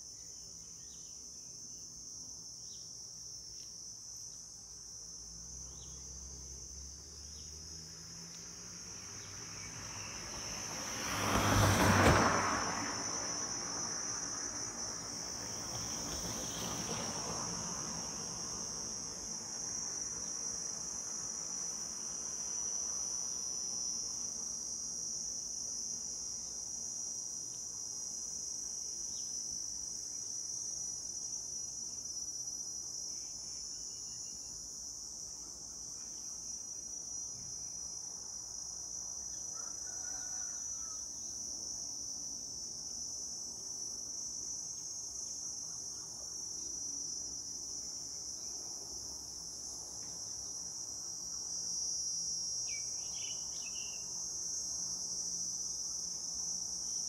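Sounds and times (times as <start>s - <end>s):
insect chorus droning: 0.0s - 57.0s.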